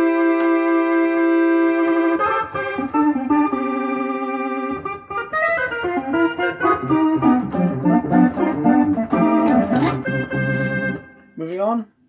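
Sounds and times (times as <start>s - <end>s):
synthesizer organ chords: 0.0s - 11.4s.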